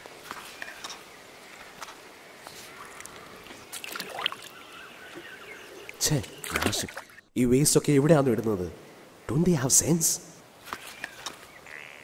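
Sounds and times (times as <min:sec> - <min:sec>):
water drips: 0:03.0 - 0:07.2
hands splashing in river water: 0:03.7 - 0:04.6.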